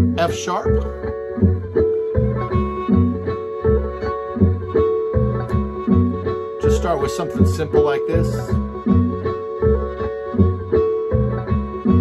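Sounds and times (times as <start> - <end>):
bass: 0.0 - 12.0
plucked guitar: 0.0 - 12.0.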